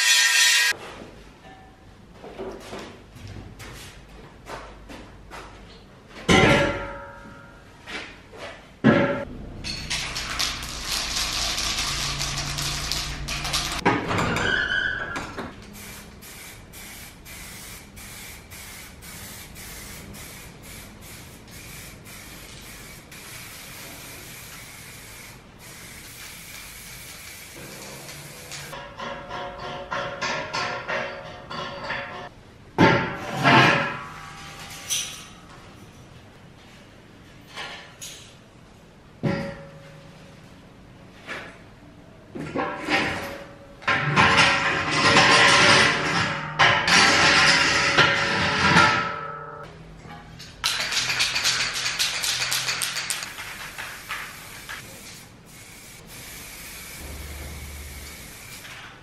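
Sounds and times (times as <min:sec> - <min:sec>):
spray-paint can hissing: 0:10.2 - 0:13.8, 0:15.7 - 0:28.8, 0:50.7 - 0:58.8.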